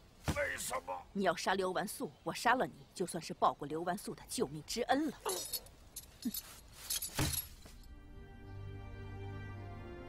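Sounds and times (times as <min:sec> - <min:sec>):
metal jangling and clinking: 0:05.2 - 0:08.0.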